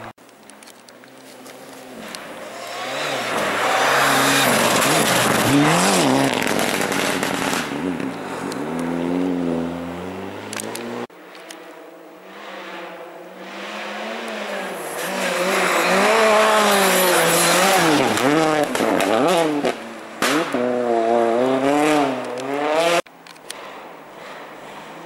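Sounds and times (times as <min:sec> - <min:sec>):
rally car engine passing: 0:01.5 - 0:11.1, 0:11.7 - 0:23.0
sharp crack: 0:20.2 - 0:20.6.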